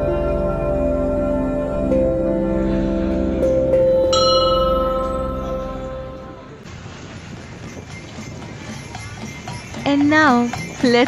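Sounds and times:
brass bell ringing: 2.6s - 6.7s.

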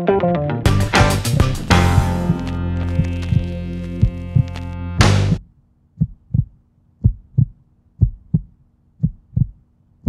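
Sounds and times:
slow heartbeat thumps: 0.7s - 5.4s, 6.0s - 9.6s.

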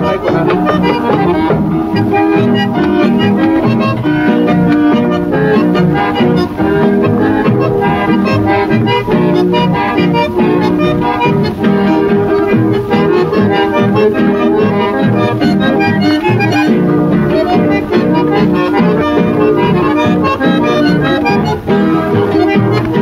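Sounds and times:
accordion folk music: 0.0s - 23.0s.

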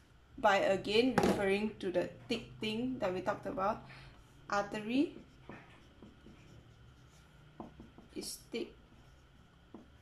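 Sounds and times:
marker writing on paper: 4.2s - 10.0s.

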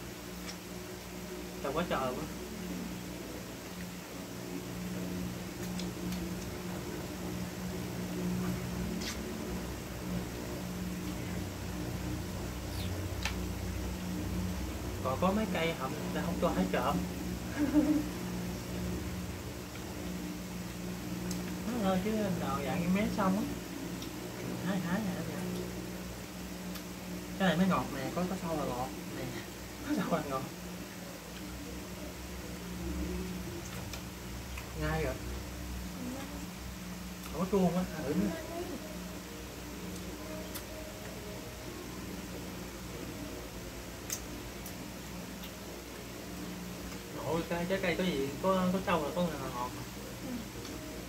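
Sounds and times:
faint room noise: 0.0s - 51.0s
low mechanical hum: 0.0s - 51.0s.

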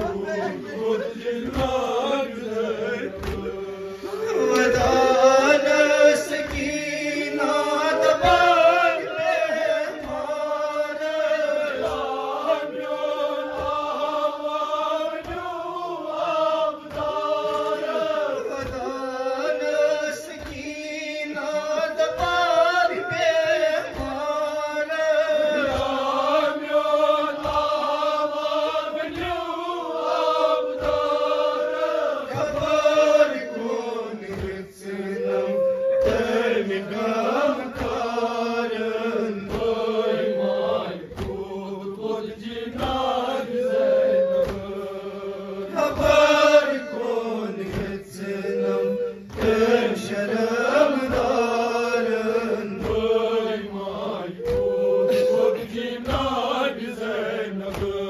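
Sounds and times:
man singing into a microphone: 0.0s - 15.4s, 17.4s - 58.0s
men chanting a lament: 0.0s - 58.0s.

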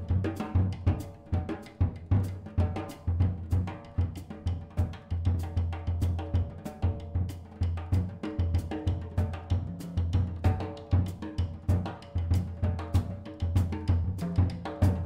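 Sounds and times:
jazz drum kit: 0.0s - 15.0s.

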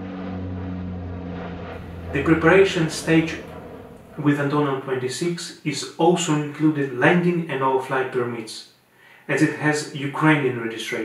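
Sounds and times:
propeller airplane drone: 0.0s - 5.3s.

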